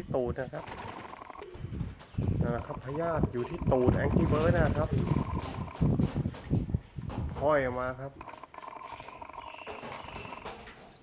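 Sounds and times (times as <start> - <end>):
pigeon cooing: 0.6 - 1.8, 2.4 - 6.0, 8.2 - 10.8.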